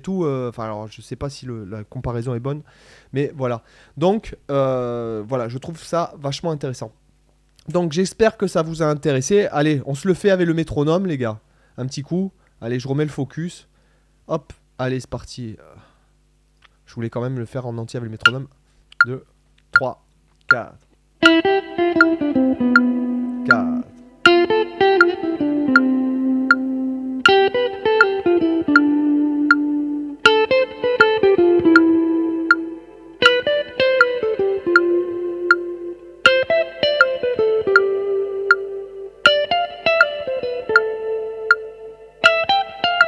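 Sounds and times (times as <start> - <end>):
metronome click: 18.2 - 19.9, 20.5 - 43.0
electric guitar phrase: 21.2 - 43.0.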